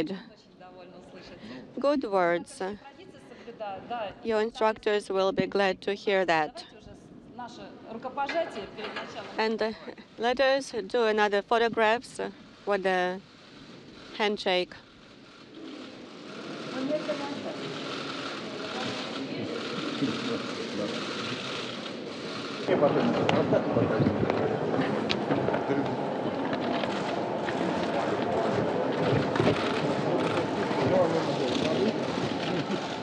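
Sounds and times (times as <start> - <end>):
murmur of crowd: 0.0 - 10.2, 15.3 - 33.0
echoing chatter and clatter: 0.0 - 33.0.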